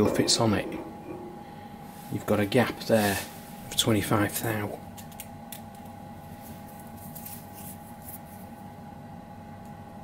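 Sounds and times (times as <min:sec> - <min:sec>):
steady workshop hum: 0:00.0 - 0:10.0.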